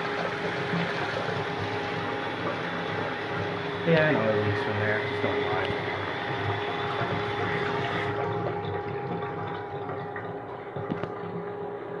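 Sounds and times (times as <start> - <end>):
water rushing into small bowl: 0.0 - 11.2.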